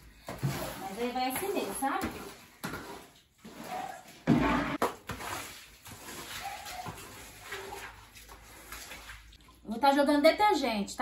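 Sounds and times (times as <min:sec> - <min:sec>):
squeegee pushing water on floor: 0:00.0 - 0:09.7.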